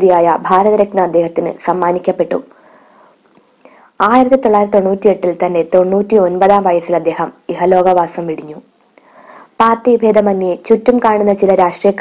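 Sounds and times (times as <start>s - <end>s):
woman narrating: 0.0s - 2.6s, 3.6s - 8.7s, 9.6s - 12.0s
faint breath: 2.5s - 4.0s, 9.0s - 9.6s.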